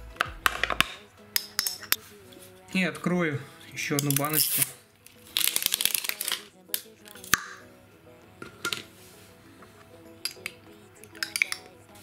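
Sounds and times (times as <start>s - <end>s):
background music: 0.0s - 12.0s
plastic seal wrapper crinkling: 4.0s - 7.3s
jar lid clicking open: 11.2s - 11.7s.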